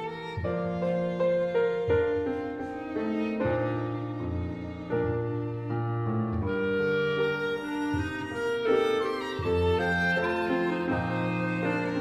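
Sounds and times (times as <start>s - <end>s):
grand piano accompaniment: 0.0s - 12.0s
violin: 0.0s - 12.0s
clarinet melody: 1.1s - 12.0s.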